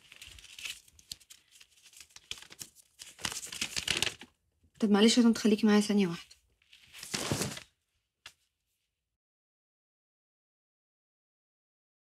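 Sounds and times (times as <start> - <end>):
clothes rustling and crinkling: 0.0 - 4.3, 6.1 - 8.5.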